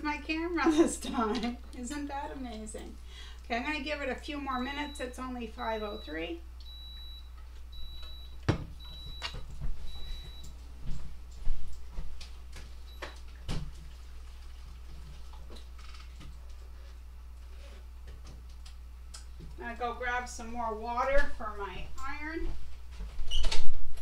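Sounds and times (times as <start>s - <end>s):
clothes iron beeping: 4.6s - 10.5s.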